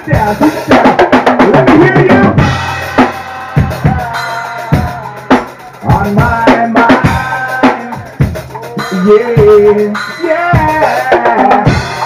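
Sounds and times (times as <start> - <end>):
drum kit strikes: 0.0 - 12.0
live rock band playing: 0.0 - 12.0.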